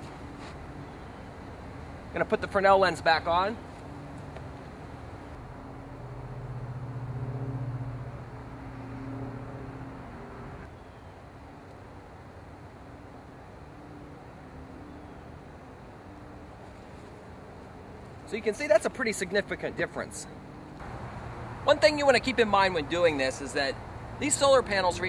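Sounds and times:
faint outdoor background noise: 0.0 - 25.0
distant engine humming: 3.4 - 11.6.

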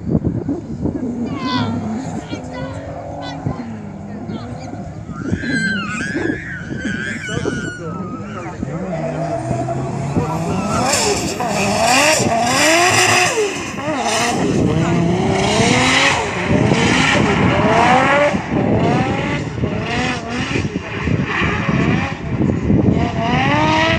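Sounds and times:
car engine revving hard: 0.4 - 23.9
tyre squeal: 1.2 - 14.4.

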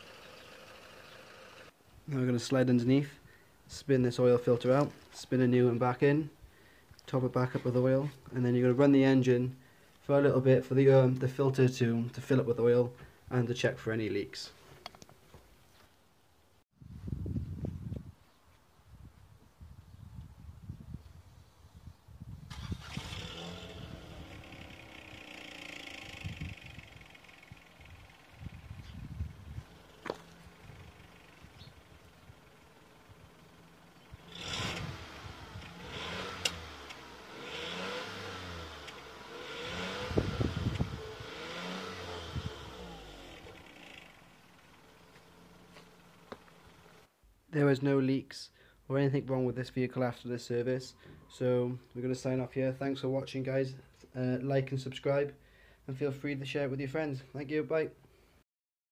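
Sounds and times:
car engine running: 22.8 - 47.0.

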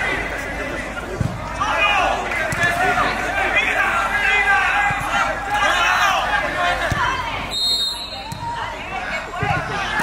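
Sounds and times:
people shouting and calling out: 0.0 - 10.0.

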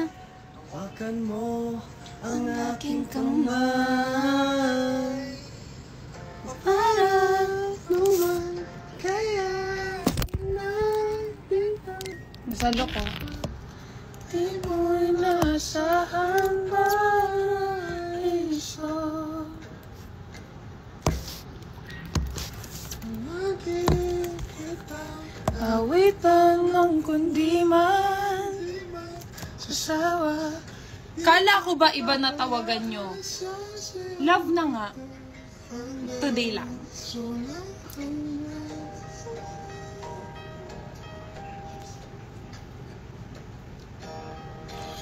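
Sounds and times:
woman singing unaccompanied: 0.0 - 5.4, 6.5 - 13.6, 14.3 - 19.6, 23.0 - 39.7.

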